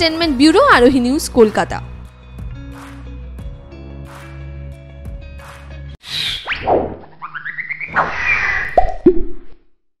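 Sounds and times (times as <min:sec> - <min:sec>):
cartoon pops dropping in pitch: 0:08.8 - 0:09.5.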